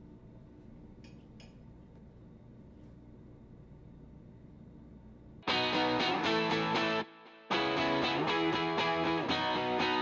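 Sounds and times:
faint low hum: 0.0 - 5.4.

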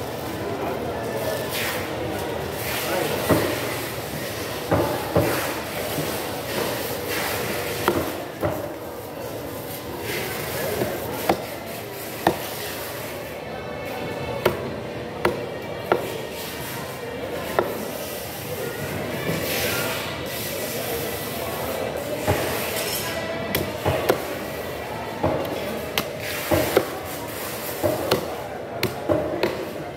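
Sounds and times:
machete chopping into wooden block: 12.2 - 12.6.

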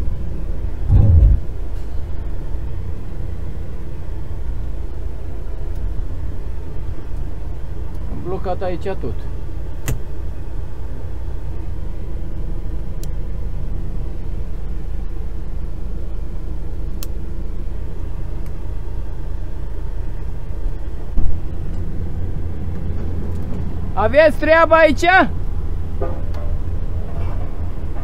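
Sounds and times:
diesel engine running: 0.1 - 24.1
loud thump: 0.9 - 1.5.

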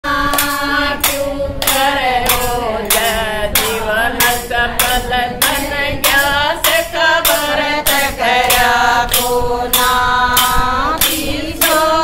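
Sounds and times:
women singing: 0.0 - 12.0
hand claps: 0.1 - 12.0.

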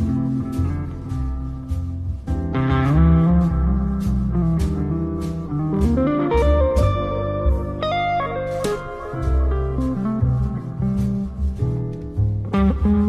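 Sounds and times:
jazz guitar melody: 0.0 - 13.0
walking upright bass: 0.0 - 13.0.

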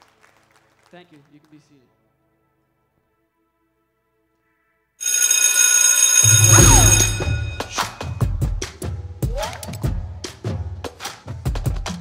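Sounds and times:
electric school bell ringing: 5.0 - 8.3
drum strokes: 6.2 - 9.4.

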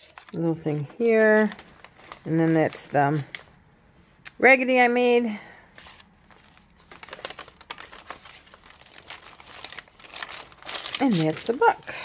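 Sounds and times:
paper pages rustling: 0.0 - 3.6, 5.7 - 12.0.

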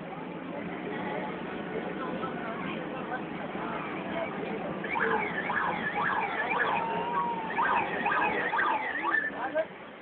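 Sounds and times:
siren yelping: 4.9 - 9.4.

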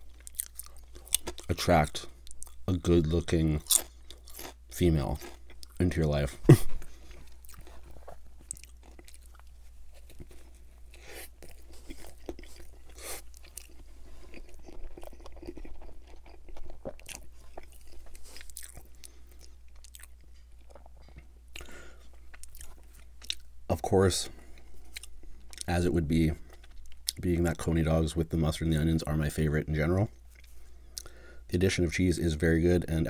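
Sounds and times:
chewing and biting food: 0.0 - 1.6, 3.6 - 5.9, 6.8 - 23.4
steady low hum: 0.0 - 33.0.

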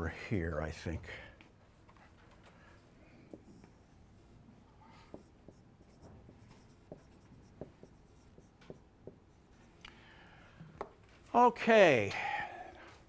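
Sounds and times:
marker squeaking on whiteboard: 3.3 - 9.8.

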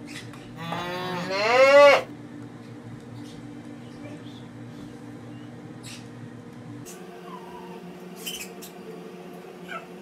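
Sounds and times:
steady background hum: 0.0 - 10.0.

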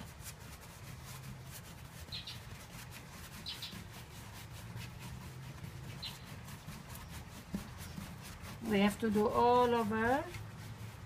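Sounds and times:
brush scratching on canvas: 0.0 - 11.0
bird chirping: 2.1 - 2.5, 3.4 - 3.9, 5.9 - 7.2.

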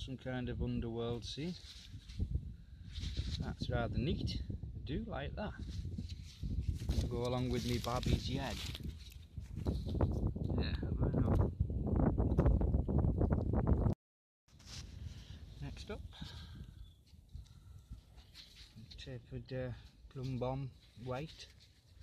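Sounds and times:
microphone handling rustling: 1.5 - 3.6, 5.6 - 11.5, 14.5 - 19.1.

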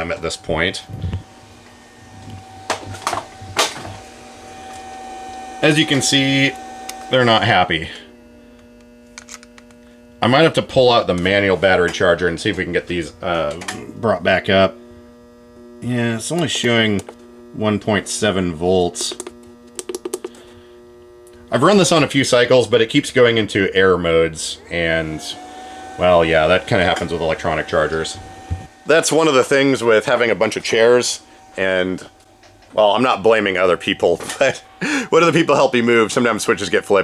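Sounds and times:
faint high hum: 0.0 - 37.0
footsteps: 28.1 - 28.7.

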